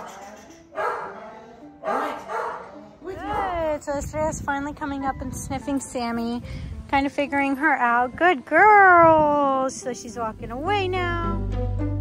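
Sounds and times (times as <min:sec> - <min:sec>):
soft background music: 0:00.0 - 0:12.0
dog play barks: 0:00.8 - 0:01.1, 0:01.8 - 0:02.7.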